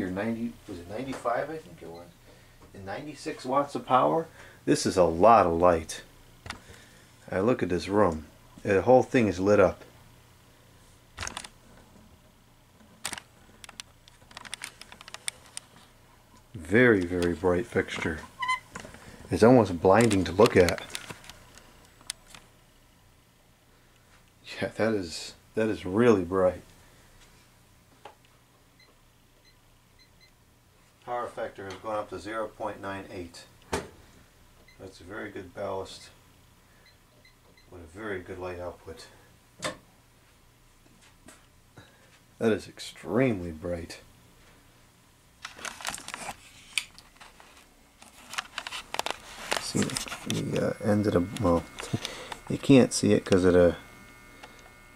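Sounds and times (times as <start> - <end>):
fluorescent light ballast hum: 0.0 - 54.9.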